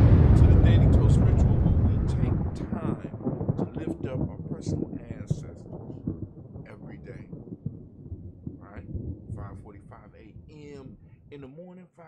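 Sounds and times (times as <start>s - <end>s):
explosion low rumble: 0.0s - 11.4s
crackles: 0.0s - 12.0s.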